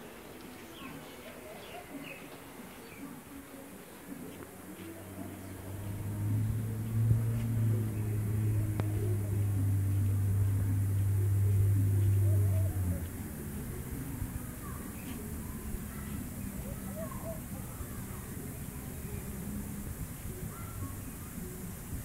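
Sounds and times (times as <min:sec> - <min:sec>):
low motor hum: 0:04.9 - 0:22.0.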